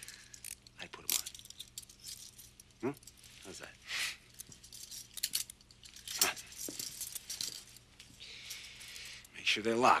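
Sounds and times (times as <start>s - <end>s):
handcuffs clinking and clicking: 0.0s - 3.5s, 4.2s - 9.4s.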